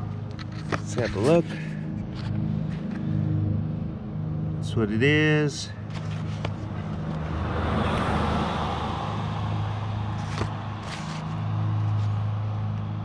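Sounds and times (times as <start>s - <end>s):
low engine hum: 0.0s - 13.0s
vehicle passing: 0.0s - 13.0s.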